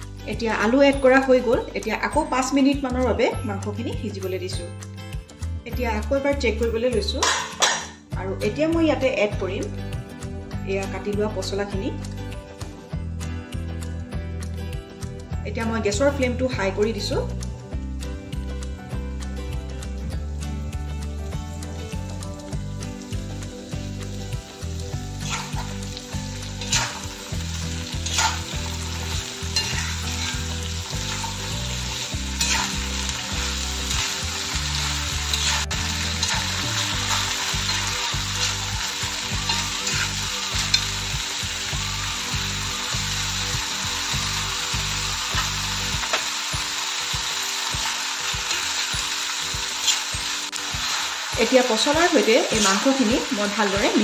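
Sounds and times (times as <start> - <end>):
food sizzling in a pan: 16.9 - 54.0
metal spatula scraping pan: 25.2 - 25.8, 26.6 - 27.2, 28.0 - 31.4, 32.3 - 33.0, 35.3 - 38.6, 39.4 - 40.8.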